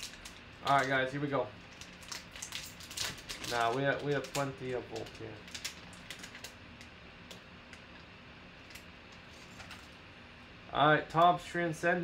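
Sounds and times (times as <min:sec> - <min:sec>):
foil pack crinkling: 0:00.0 - 0:07.4
faint steady hum: 0:00.0 - 0:12.0.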